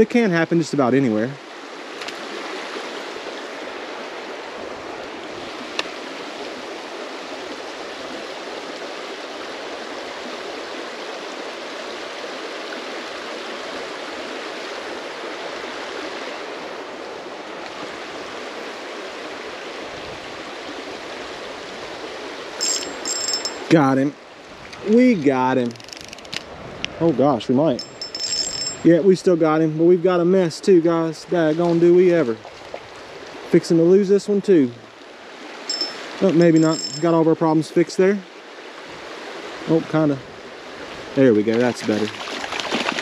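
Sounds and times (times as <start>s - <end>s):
creek water rushing: 0.0s - 43.0s.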